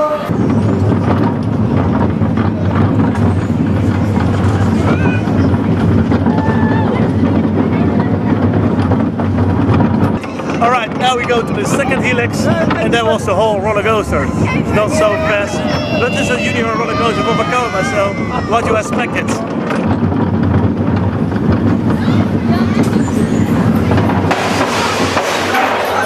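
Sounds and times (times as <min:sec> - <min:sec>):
roller coaster wheels rumbling: 0:00.0 - 0:26.0.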